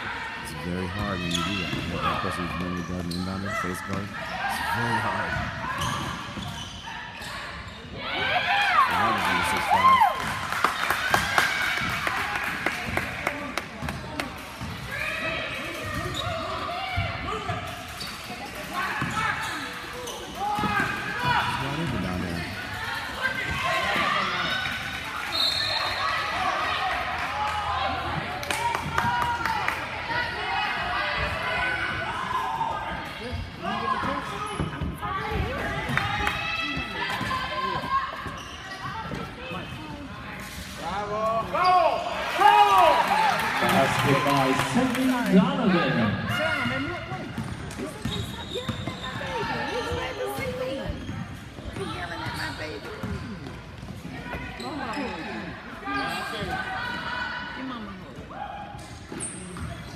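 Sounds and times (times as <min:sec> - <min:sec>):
spectators talking and shouting: 0:00.0 - 0:59.9
sneakers squeaking: 0:00.5 - 0:26.7, 0:30.2 - 0:42.2, 0:43.9 - 0:57.1, 0:57.8 - 0:59.9
basketball bouncing on court: 0:46.7 - 0:55.0.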